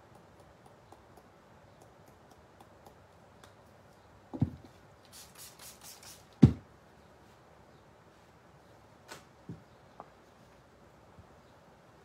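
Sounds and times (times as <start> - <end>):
water mister spritzes: 5.1 - 6.4.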